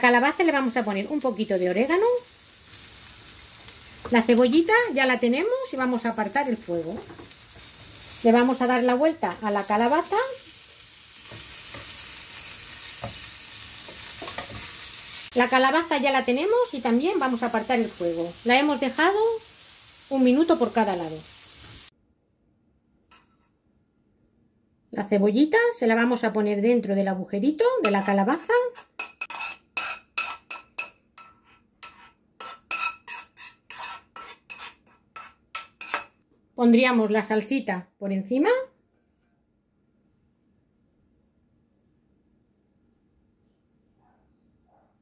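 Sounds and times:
slices sizzling in hot oil: 0.0 - 21.9, 27.8 - 36.2
metal fork scraping a pan: 13.8 - 14.8, 23.1 - 23.5, 27.8 - 36.2.

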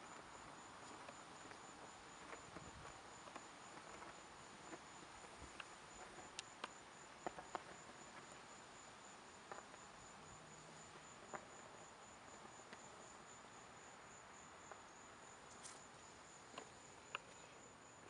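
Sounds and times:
cricket chirping: 0.0 - 18.0.

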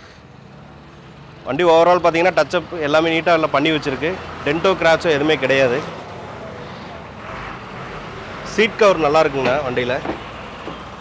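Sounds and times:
distant road traffic drone: 0.0 - 11.0.

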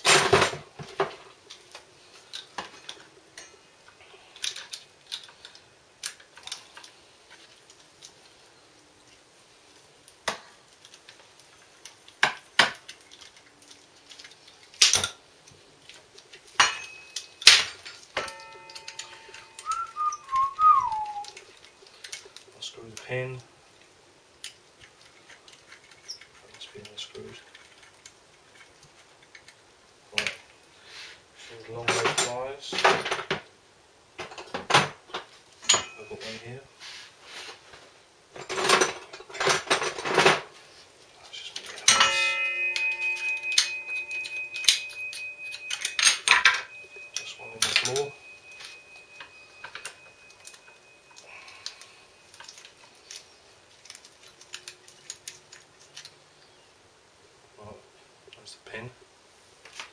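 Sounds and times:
metal tools clicking and scraping: 1.5 - 3.7, 10.7 - 23.4, 24.4 - 29.6, 35.6 - 36.6, 41.4 - 56.6
struck metal ringing: 18.2 - 20.3, 41.8 - 51.4.

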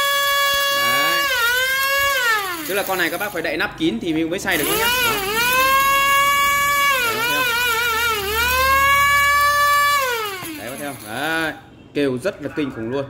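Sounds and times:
grinder motor whining: 0.0 - 11.6.

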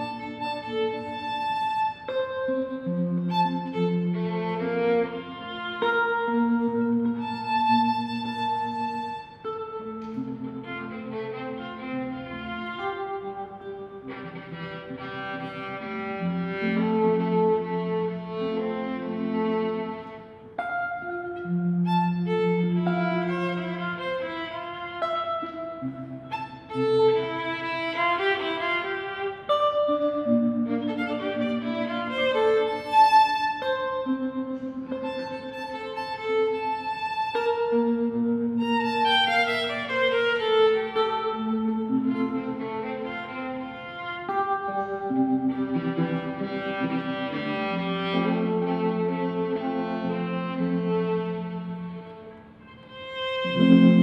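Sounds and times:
violin: 0.0 - 54.0
electric guitar: 53.4 - 54.0.

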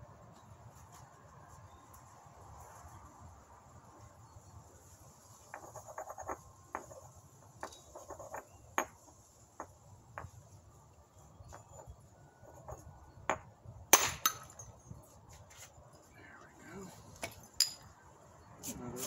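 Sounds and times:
stone clicking and tapping: 7.6 - 10.4.

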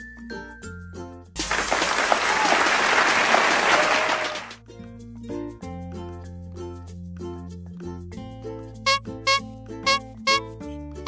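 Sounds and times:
crowd applause: 1.4 - 4.6
voices cheering: 1.4 - 4.6
chiming children's tune: 8.9 - 10.4.

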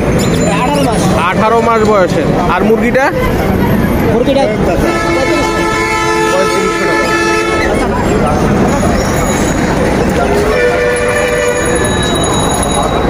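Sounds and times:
street and crowd noise: 0.0 - 13.0
vehicle horn blasts: 4.8 - 7.8, 10.4 - 11.8.

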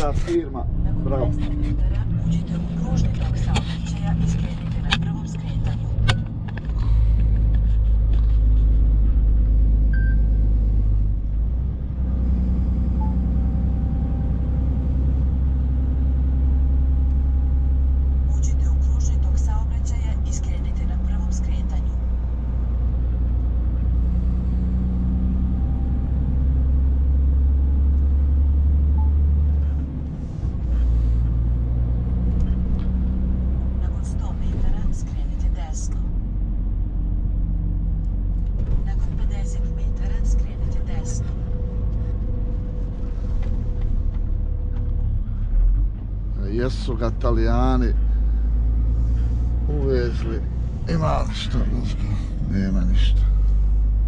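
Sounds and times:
truck diesel engine drone: 0.0 - 54.0.

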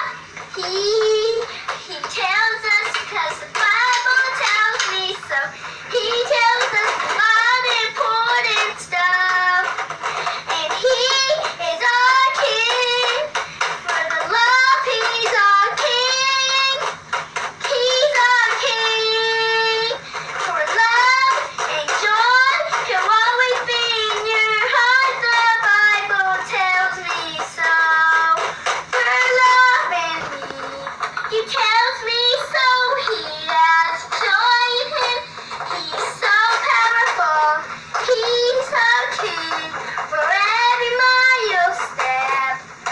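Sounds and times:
girl singing in a high voice: 0.0 - 17.0, 17.6 - 42.7.

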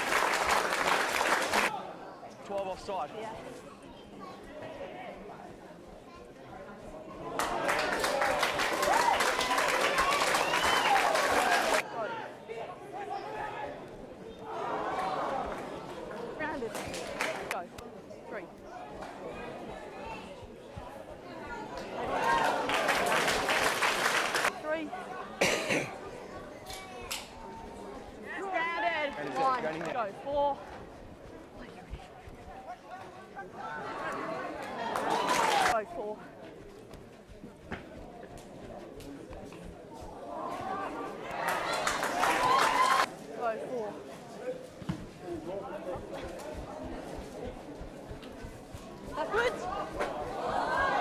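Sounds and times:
person coughing: 25.4 - 26.0.

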